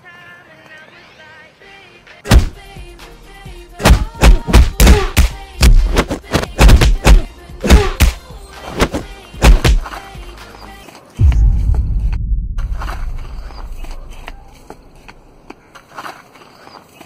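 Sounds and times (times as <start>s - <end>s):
music: 0.0s - 12.2s
sharp fight hits: 2.3s - 2.6s, 3.8s - 8.2s, 8.8s - 9.8s, 11.2s - 14.3s
deep boom: 11.2s - 14.4s.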